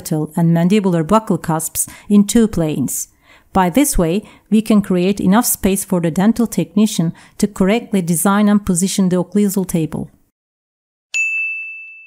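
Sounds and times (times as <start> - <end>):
bell-like chime: 11.1 - 12.0.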